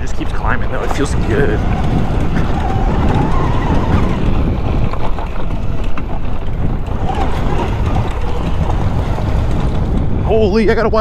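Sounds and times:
dirt bike riding noise: 0:00.0 - 0:11.0
wind buffeting microphone: 0:00.0 - 0:11.0.

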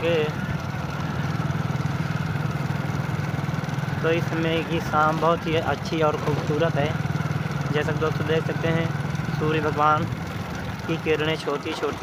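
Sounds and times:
motorcycle engine droning: 0:00.0 - 0:12.0.

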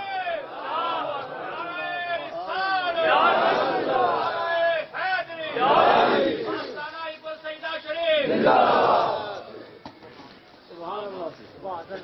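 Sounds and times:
men calling out loudly: 0:00.0 - 0:09.5
crowd voices: 0:00.0 - 0:10.6.

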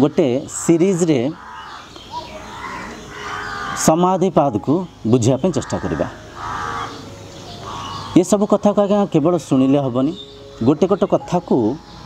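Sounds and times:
faint bird calls: 0:00.0 - 0:12.0.

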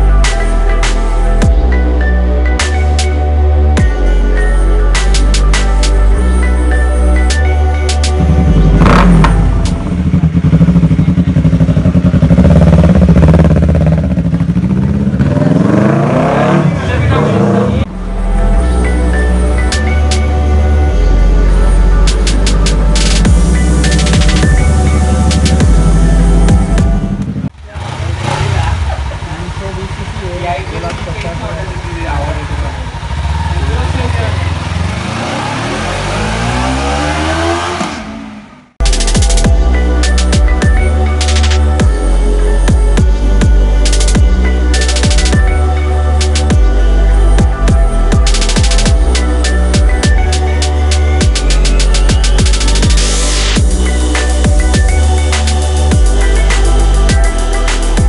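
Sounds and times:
motorcycle engine revving and idling: 0:08.0 - 0:58.0
motorcycle engine idling: 0:08.2 - 0:16.1, 0:21.8 - 0:35.2.

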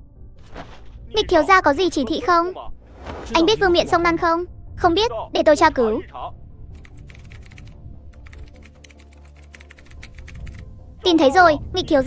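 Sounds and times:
soft background music: 0:00.0 - 0:12.0
fast typing on keyboard: 0:06.8 - 0:10.6.

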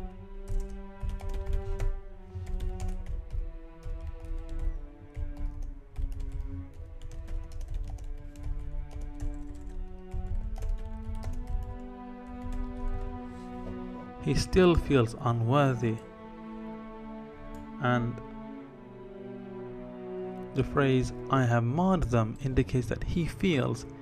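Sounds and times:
background music of held notes: 0:00.0 - 0:24.0
typing on computer keyboard: 0:00.4 - 0:13.1.

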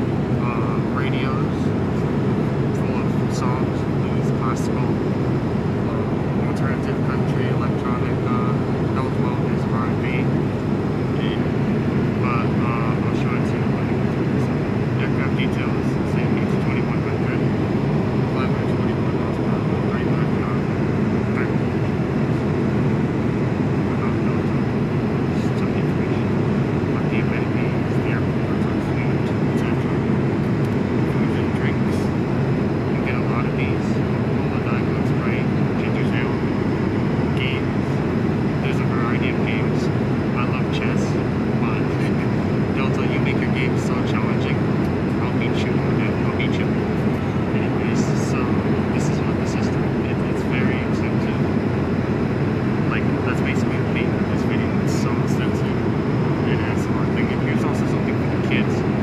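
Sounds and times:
airliner cabin noise: 0:00.0 - 0:59.0
faint passenger voices: 0:00.0 - 0:59.0.

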